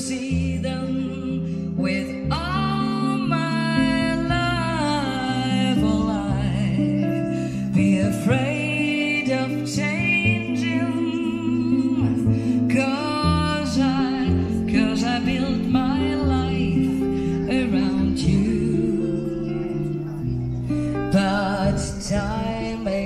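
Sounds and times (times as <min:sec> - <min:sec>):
jazz guitar: 0:00.0 - 0:23.0
low bass notes: 0:00.0 - 0:23.0
woman singing: 0:00.0 - 0:23.0.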